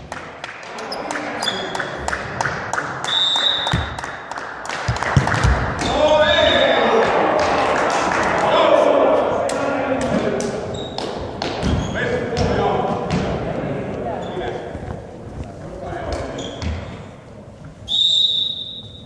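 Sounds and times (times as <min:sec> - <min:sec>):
players' voices: 0:00.4 - 0:03.9, 0:04.8 - 0:17.2
referee's whistle blast: 0:03.1 - 0:03.9, 0:17.9 - 0:19.0
volleyball bouncing on floor: 0:03.5 - 0:04.1, 0:04.8 - 0:06.0, 0:10.0 - 0:13.5.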